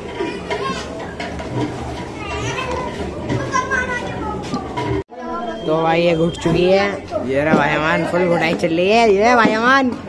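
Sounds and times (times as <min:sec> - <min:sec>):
background chatter of voices: 0:00.0 - 0:10.0.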